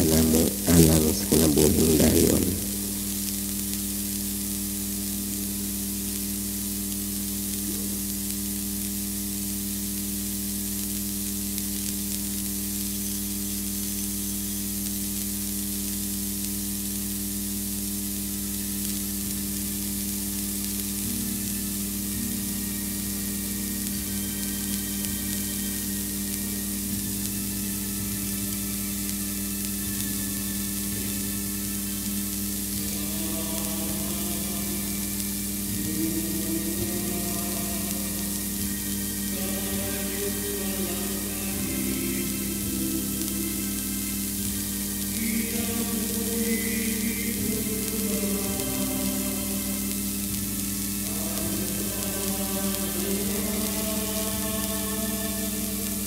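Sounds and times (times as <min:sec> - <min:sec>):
electrical hum and hiss: 0:00.0 - 0:56.0.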